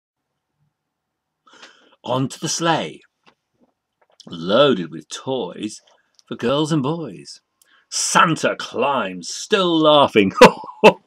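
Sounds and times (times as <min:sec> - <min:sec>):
sharp intake of breath: 0:01.5 - 0:02.0.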